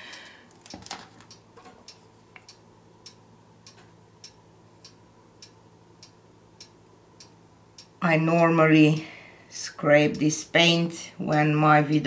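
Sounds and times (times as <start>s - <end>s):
faint room hum: 0.0s - 12.0s
clock-like ticking: 1.3s - 8.0s.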